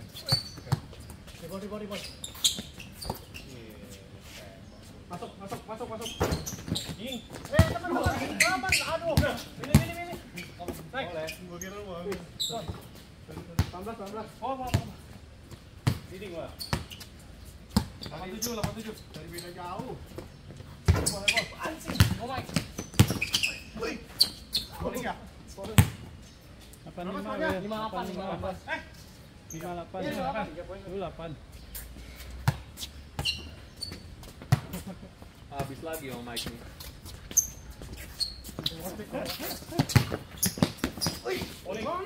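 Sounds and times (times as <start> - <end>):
basketball bouncing on hard court: 6.2 - 10.0, 21.9 - 23.4, 39.8 - 41.6.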